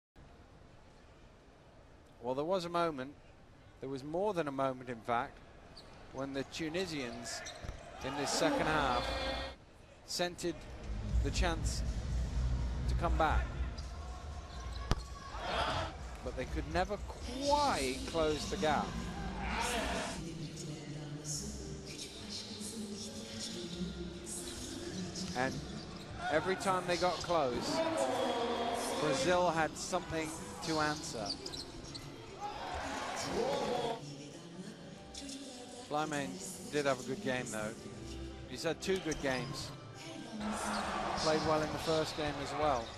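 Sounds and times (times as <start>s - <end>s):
arena crowd noise: 4.8s - 12.1s, 12.7s - 20.6s, 25.8s - 34.7s, 38.8s - 42.9s
arena crowd rumble: 10.5s - 20.2s, 40.4s - 42.9s
basketball court sounds: 11.9s - 18.4s.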